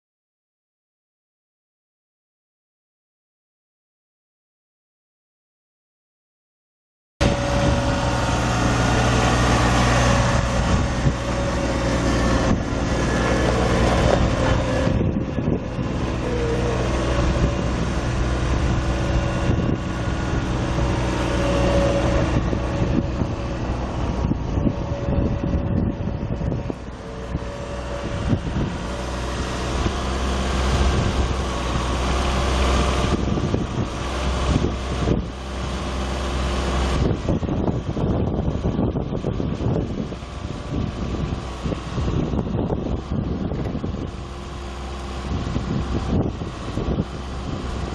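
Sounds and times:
tractor diesel engine running: 7.2s - 47.9s.

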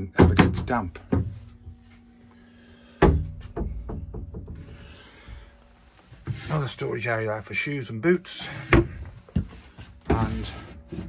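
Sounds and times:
wooden knocks: 0.2s - 1.7s, 3.0s - 4.9s
wood rubbing: 8.5s - 11.0s.

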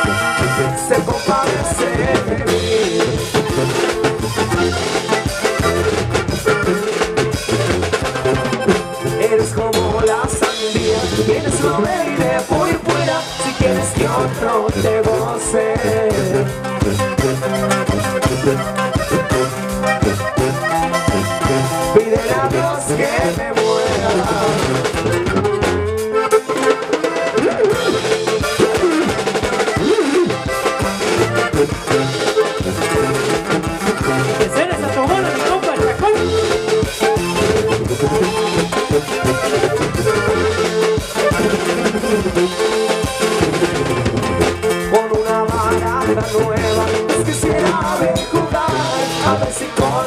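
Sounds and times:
acoustic guitar: 0.0s - 50.0s
bass: 0.0s - 50.0s
drum kit beat: 0.0s - 50.0s
lead melody line: 0.0s - 50.0s.

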